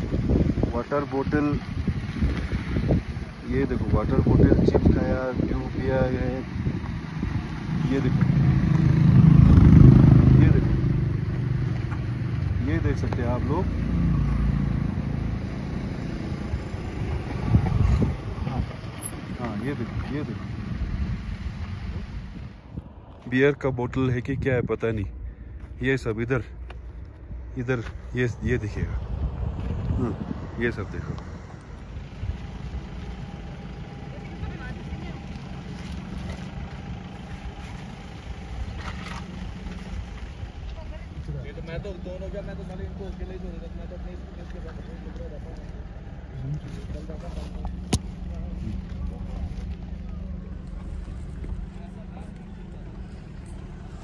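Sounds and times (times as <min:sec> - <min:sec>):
wind buffeting microphone: 0:00.0 - 0:10.0, 0:16.3 - 0:25.6, 0:27.3 - 0:33.6
vehicle engine idling: 0:00.0 - 0:54.0.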